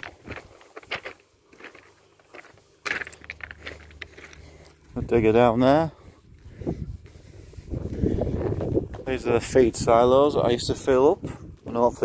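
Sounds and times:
wind buffeting microphone: 4.8 - 12.0.

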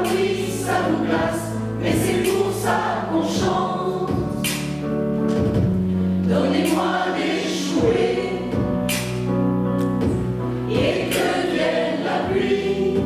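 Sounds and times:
mixed choir singing: 0.0 - 4.4, 6.2 - 8.8, 10.7 - 13.0.

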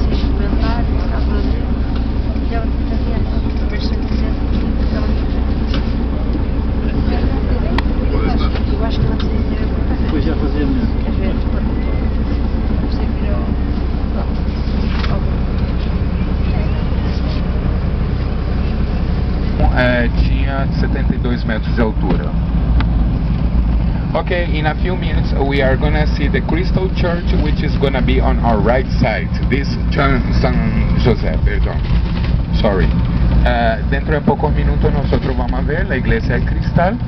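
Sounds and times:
bus engine droning: 0.0 - 37.0
faint passenger chatter: 0.0 - 37.0.

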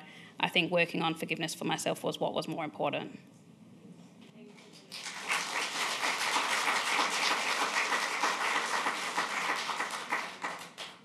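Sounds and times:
audience applauding: 4.9 - 11.0.

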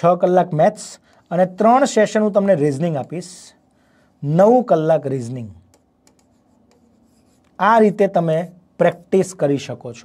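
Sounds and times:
man speaking: 0.0 - 3.6, 4.2 - 5.7, 7.6 - 10.0
chalk scratching on a blackboard: 5.7 - 7.7.

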